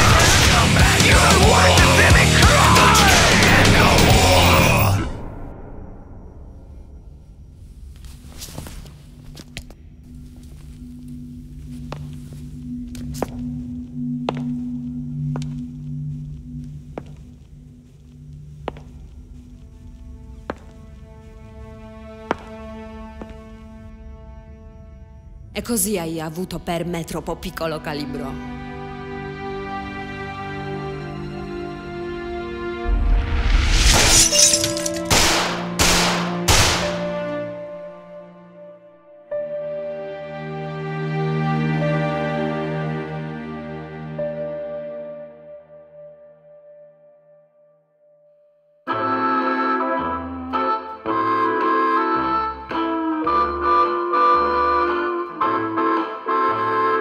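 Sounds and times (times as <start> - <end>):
low droning film score: 0.0 - 47.5
glass shattering: 33.9 - 35.2
handgun shots: 34.0 - 37.1.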